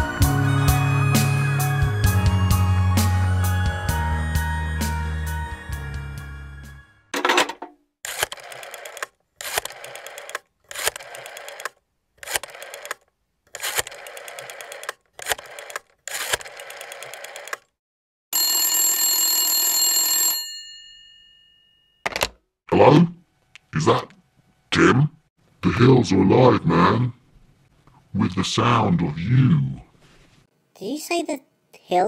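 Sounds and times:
telephone bell ringing: 18.3s - 22.0s.

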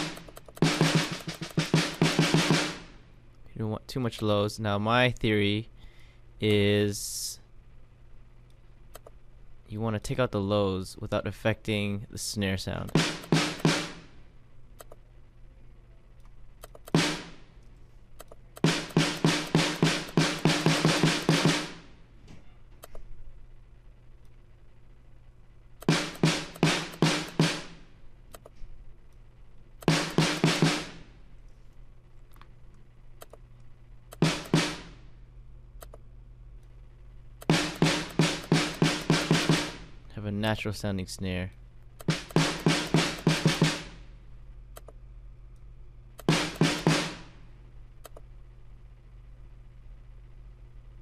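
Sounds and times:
snare drum hits: 0.0s - 2.9s, 13.0s - 14.1s, 16.9s - 17.4s, 18.6s - 21.9s, 25.8s - 27.8s, 29.8s - 31.0s, 34.2s - 35.0s, 37.4s - 39.9s, 42.0s - 44.0s, 46.2s - 47.3s.

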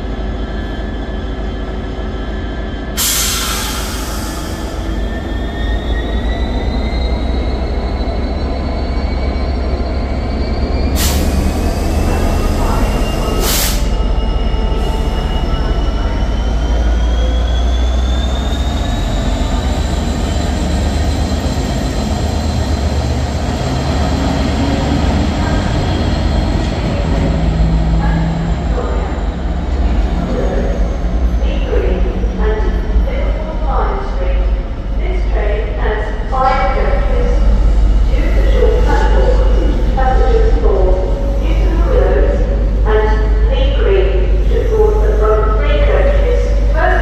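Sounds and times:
diesel locomotive engine rumble: 0.0s - 47.0s.

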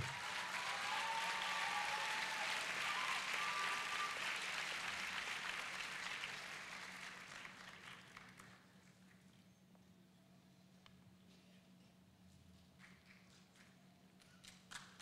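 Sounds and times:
audience applauding: 0.0s - 8.6s.

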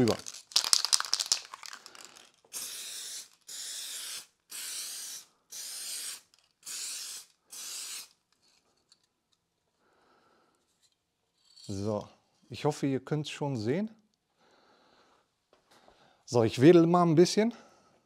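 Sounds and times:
aerosol can rattling: 0.0s - 8.2s
aerosol spray hissing: 2.5s - 8.2s.

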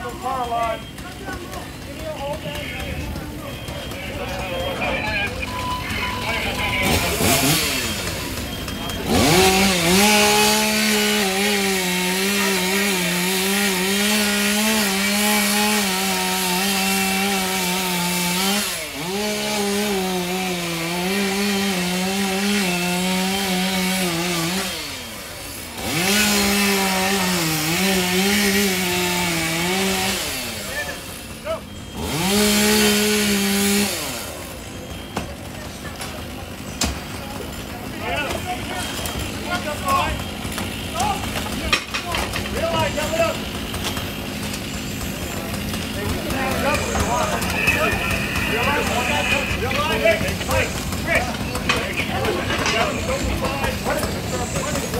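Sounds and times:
chainsaw cutting: 0.0s - 54.9s.

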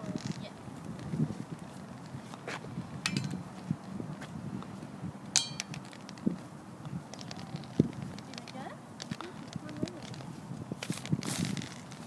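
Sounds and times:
footsteps on concrete: 0.3s - 6.5s
cane tapping and scraping on concrete: 2.0s - 3.4s, 5.4s - 6.4s, 7.1s - 12.0s.

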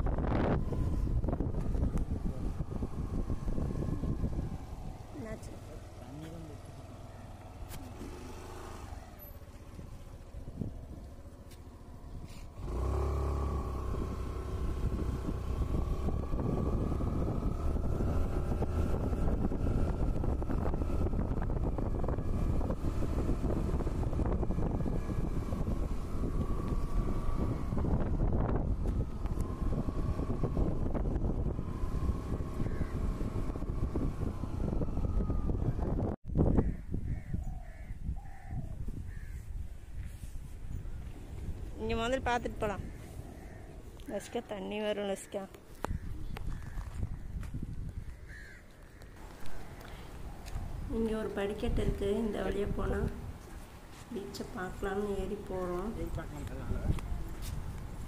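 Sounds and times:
vehicle engine and road rumble: 0.0s - 58.0s.

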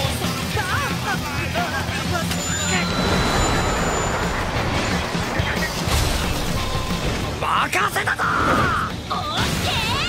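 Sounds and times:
steady rushing noise: 2.8s - 7.8s.

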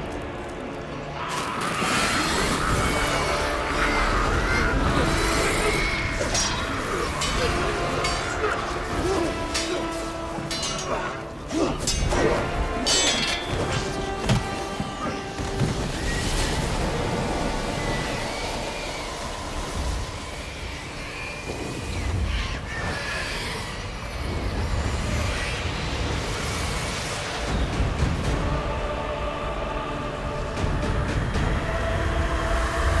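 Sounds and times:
dramatic orchestral score: 0.0s - 33.0s.

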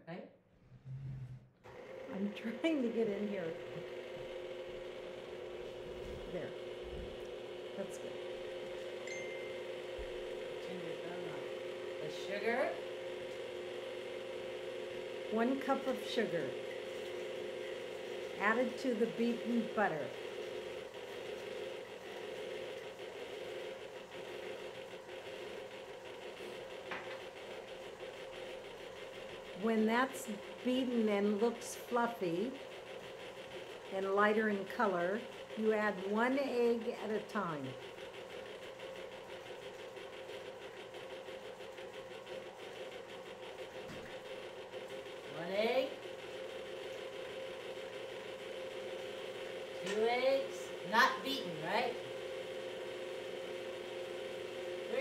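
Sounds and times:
stand mixer running: 1.7s - 55.0s.

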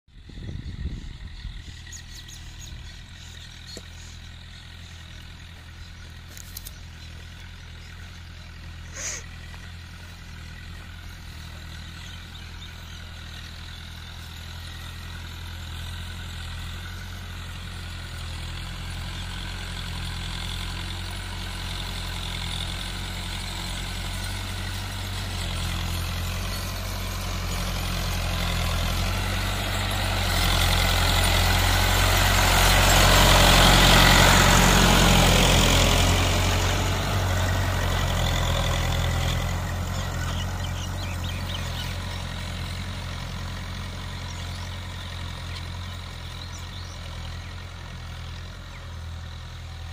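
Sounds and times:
tractor diesel engine: 0.1s - 49.9s.

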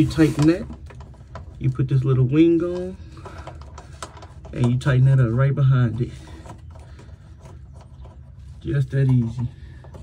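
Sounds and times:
hand rubbing a knob: 0.0s - 10.0s.

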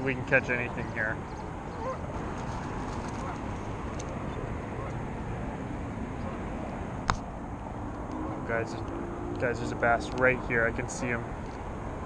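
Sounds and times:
low rumble of freeway traffic: 0.0s - 12.0s.

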